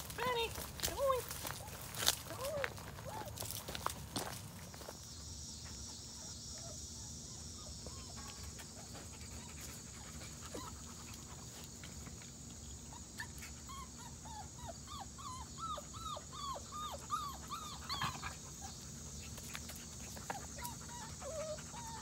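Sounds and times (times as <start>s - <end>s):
puppy whimpering and yipping: 12.9s - 18.4s, 20.3s - 22.0s.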